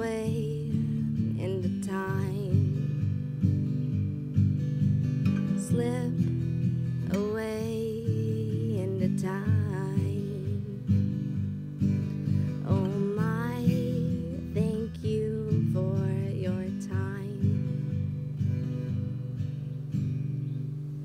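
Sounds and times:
woman singing: 0.0s - 3.3s, 5.3s - 18.2s
acoustic guitar strumming chords: 0.0s - 21.0s.

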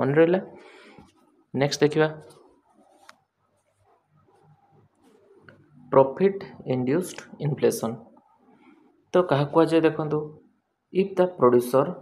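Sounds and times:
man speaking: 0.0s - 0.6s, 1.6s - 2.4s, 5.9s - 8.1s, 9.2s - 12.0s.

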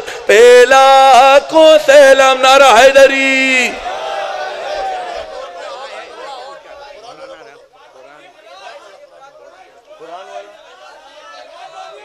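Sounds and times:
men's voices chattering: 3.6s - 12.0s.

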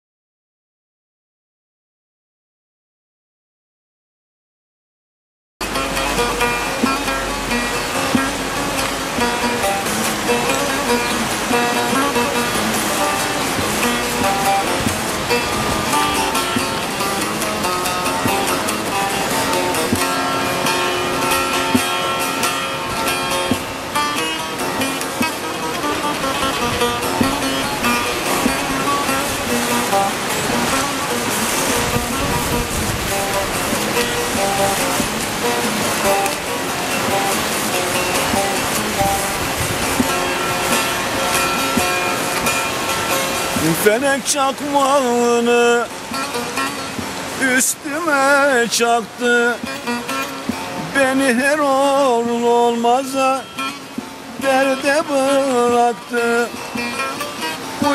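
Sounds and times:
plucked saz folk melody: 5.6s - 57.9s.

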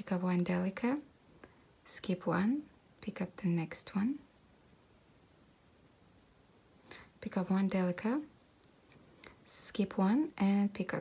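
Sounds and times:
woman speaking: 0.0s - 1.1s, 1.8s - 4.3s, 7.2s - 8.3s, 9.5s - 11.0s.

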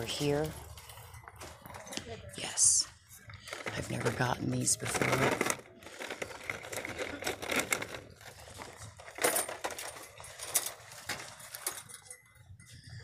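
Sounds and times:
merchandise clinking on metal hooks: 3.5s - 12.5s.

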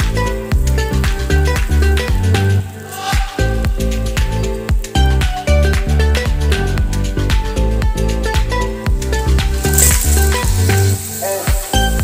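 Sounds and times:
background music: 0.0s - 12.0s
snails sizzling in oil: 9.6s - 12.0s.

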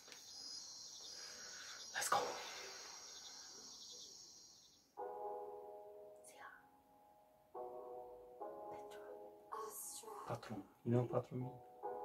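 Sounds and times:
crickets chirping: 0.0s - 5.0s.

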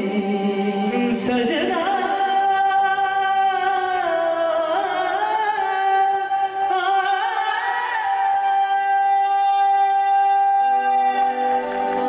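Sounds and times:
person singing long high note: 0.0s - 12.0s.

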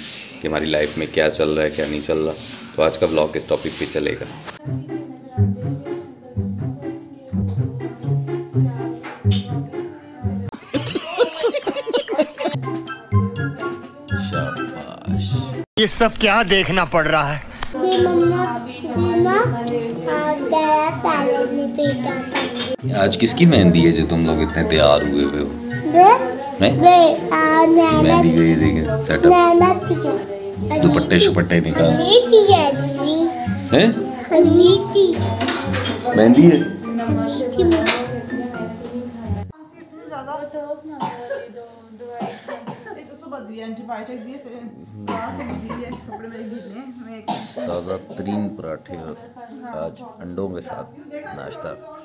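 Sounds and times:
person coughing: 45.1s - 46.2s, 47.3s - 48.0s.

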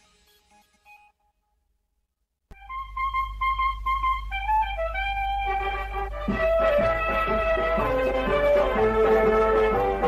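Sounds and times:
countdown music: 2.6s - 10.0s
news theme music: 2.7s - 10.0s.

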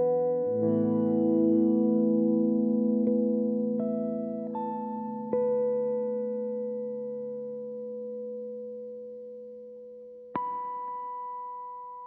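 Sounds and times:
electric jazz guitars playing: 0.0s - 6.8s.

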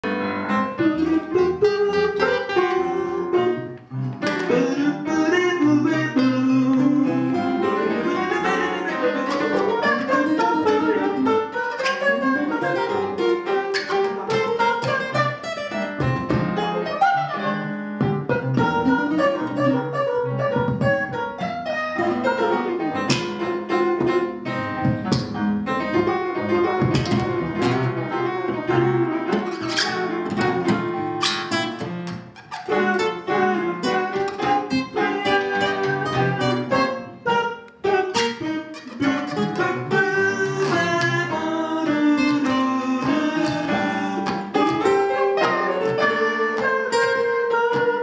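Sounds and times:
acoustic guitar plucking: 0.0s - 48.0s
sliding melodic line: 0.3s - 32.1s, 32.7s - 48.0s.

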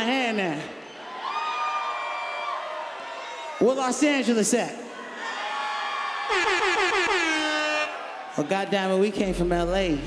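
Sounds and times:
air horn blasts: 6.3s - 8.1s.

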